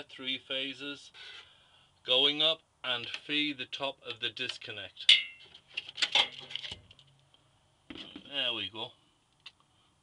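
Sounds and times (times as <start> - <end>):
metal clinks and knocks: 5.1 - 7.0.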